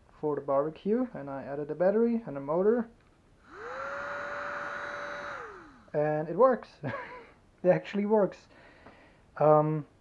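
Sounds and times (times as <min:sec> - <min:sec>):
small electric motor whine: 0:03.4 - 0:06.0
fan air rushing: 0:03.4 - 0:06.4.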